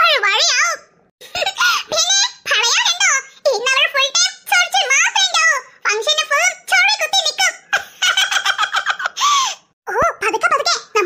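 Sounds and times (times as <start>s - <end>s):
high-pitched cartoon voice: 0.0s - 7.8s, 9.9s - 11.0s.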